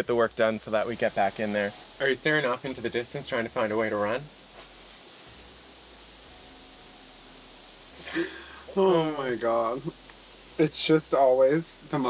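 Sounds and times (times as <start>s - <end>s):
background hiss: 0.0s - 12.0s
low hum: 0.0s - 12.0s.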